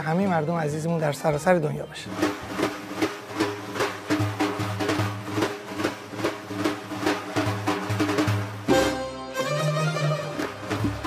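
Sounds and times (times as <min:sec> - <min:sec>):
percussion strokes: 0:01.0 - 0:11.0.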